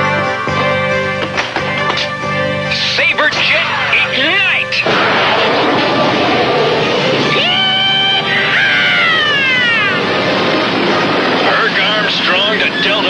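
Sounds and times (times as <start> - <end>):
jet pack rushing roar: 4.8 - 13.0
rising and sliding whine: 4.8 - 13.0.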